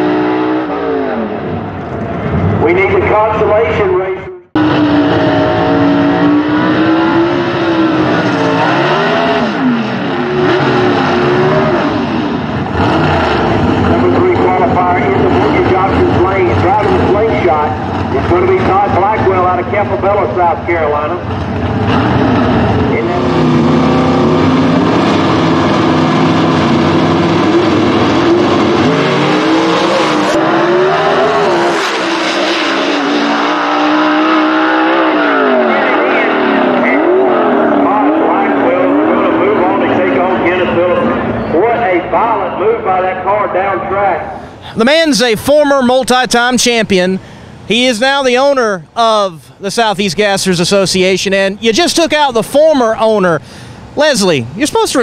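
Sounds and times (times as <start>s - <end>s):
drag racing car engines revving: 0.0s - 55.0s.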